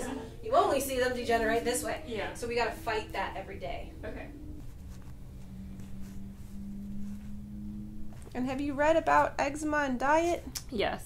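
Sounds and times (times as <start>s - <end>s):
low steady hum: 0.0s - 10.9s.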